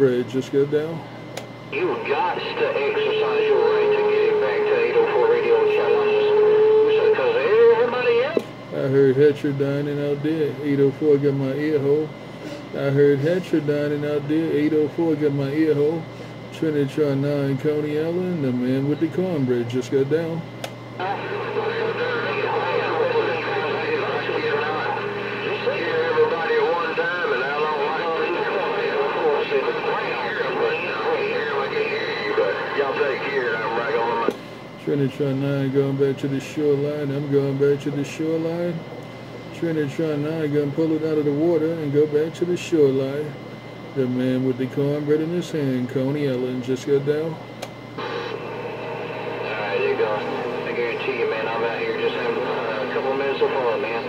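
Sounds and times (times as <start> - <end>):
garbled radio voices: 1.7 - 8.4, 21.0 - 34.3, 48.0 - 54.0
radio whistling tone: 1.8 - 8.4, 21.0 - 34.3, 48.0 - 54.0.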